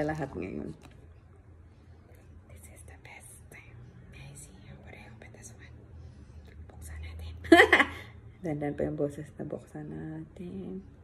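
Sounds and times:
low steady hum: 0:00.0 - 0:11.0
woman whispering: 0:02.4 - 0:06.0, 0:06.6 - 0:07.4.

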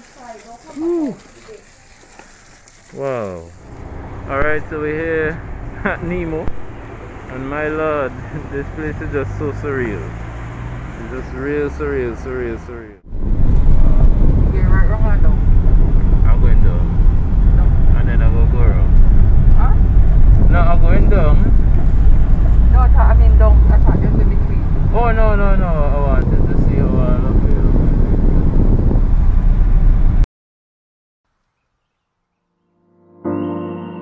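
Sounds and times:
wind and road noise rumble: 0:00.0 - 0:30.3.

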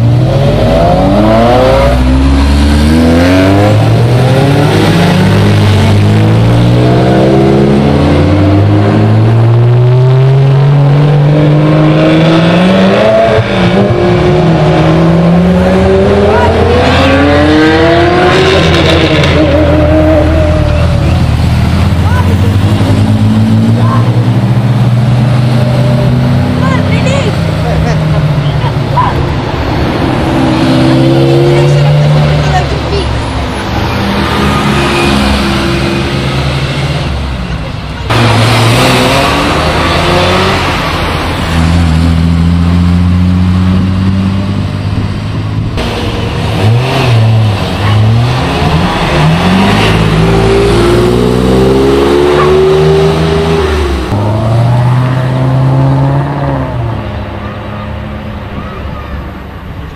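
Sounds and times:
sports car engines revving: 0:00.0 - 0:59.9.

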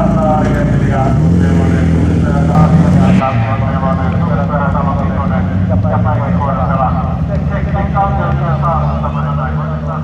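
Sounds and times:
race car engines running hard: 0:00.0 - 0:10.0.

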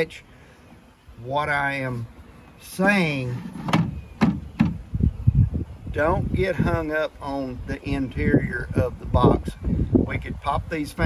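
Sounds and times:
wooden frames knocking: 0:03.4 - 0:04.8.

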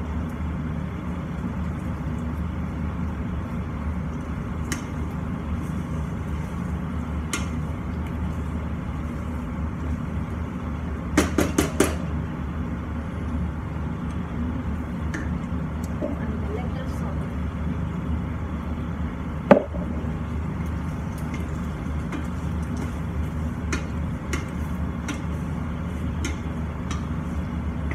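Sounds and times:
steady low hum: 0:00.0 - 0:27.9
spatula stirring pasta in pan: 0:20.5 - 0:27.9.

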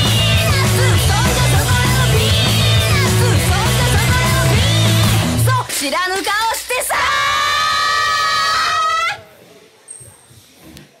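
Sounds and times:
high-pitched vocal shout: 0:06.6 - 0:09.3.

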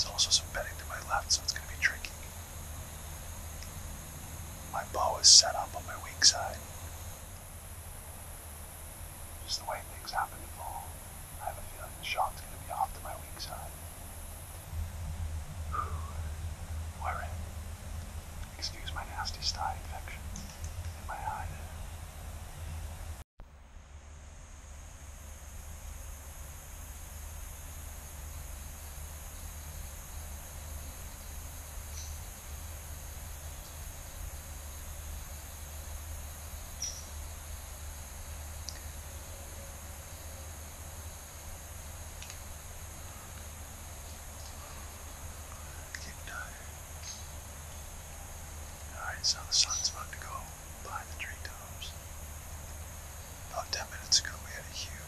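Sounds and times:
faint high hum: 0:00.0 - 0:55.0
steady hiss: 0:00.0 - 0:55.0.

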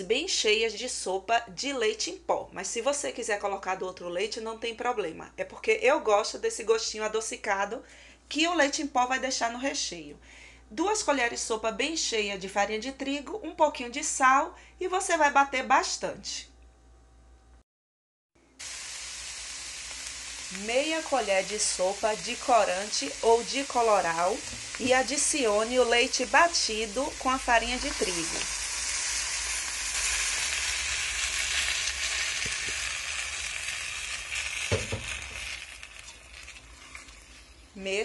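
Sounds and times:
chicken sizzling in a pot: 0:18.5 - 0:37.9.

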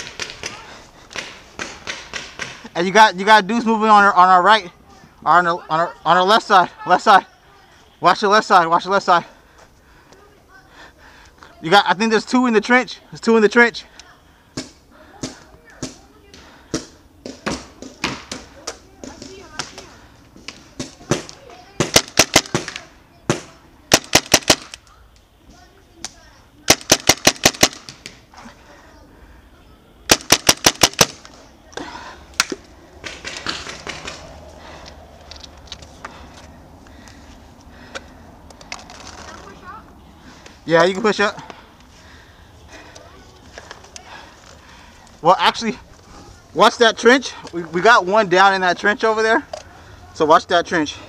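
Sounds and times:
paintball marker firing: 0:20.8 - 0:24.8, 0:26.7 - 0:28.2, 0:30.1 - 0:31.4.

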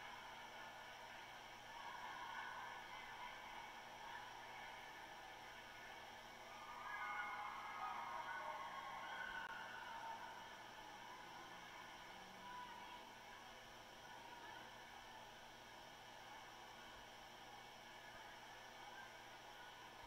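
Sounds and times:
faint ice arena ambience: 0:00.0 - 0:20.0.

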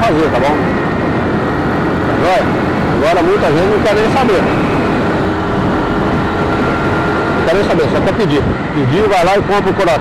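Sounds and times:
motorcycle engine cruising: 0:00.0 - 0:10.0
road and wind noise: 0:00.0 - 0:10.0.

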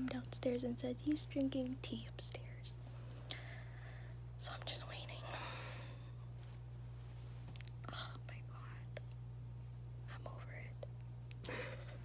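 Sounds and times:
woman whispering: 0:00.0 - 0:02.8, 0:04.4 - 0:05.5, 0:07.8 - 0:09.1, 0:10.0 - 0:10.9.

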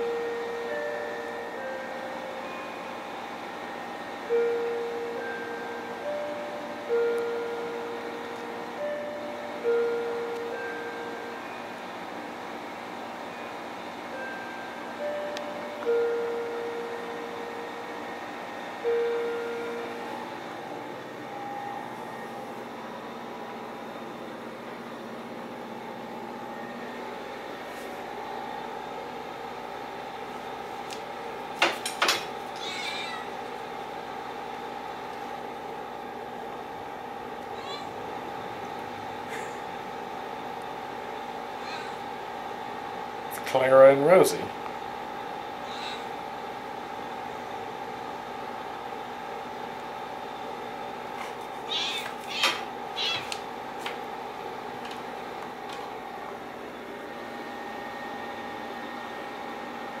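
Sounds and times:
steady background hum: 0:00.0 - 1:00.0
cat meowing: 0:32.5 - 0:33.4, 0:37.6 - 0:38.0, 0:41.6 - 0:42.0, 0:51.6 - 0:53.4.

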